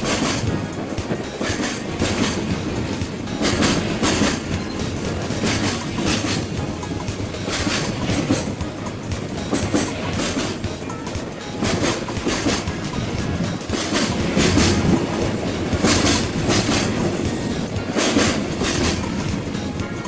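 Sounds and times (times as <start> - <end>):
train wagons rumbling: 0.0 - 20.0
wheels clacking over rail joints: 0.0 - 20.0.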